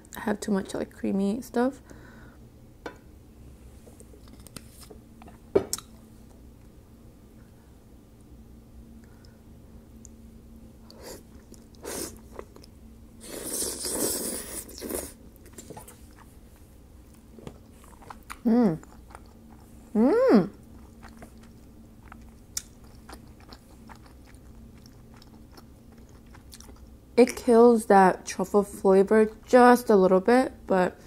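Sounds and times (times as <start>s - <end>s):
wet slurping and chewing: 10.8s - 19.9s, 20.5s - 27.0s
person humming mm: 19.9s - 20.6s.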